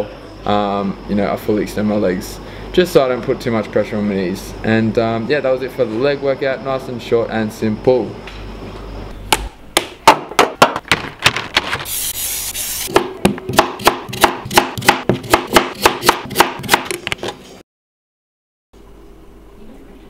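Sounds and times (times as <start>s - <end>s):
knife chopping on cutting board: 12.9s - 17.1s.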